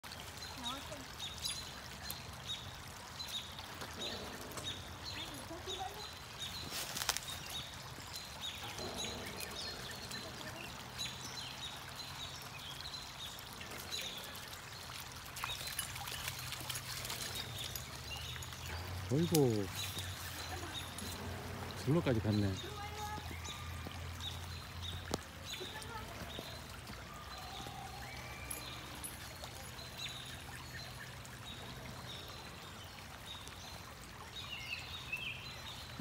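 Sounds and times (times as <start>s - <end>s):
creek water trickling over stones: 0.0s - 36.0s.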